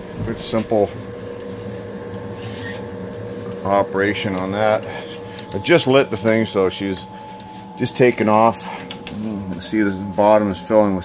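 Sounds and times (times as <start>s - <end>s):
exhaust fan motor hum: 0.0s - 11.0s.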